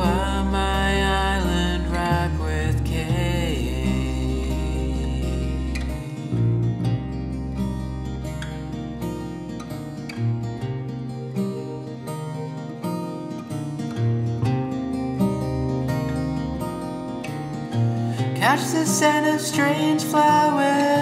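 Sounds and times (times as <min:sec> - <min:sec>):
acoustic guitar strumming: 0:00.0 - 0:21.0
plucked guitar notes: 0:00.0 - 0:21.0.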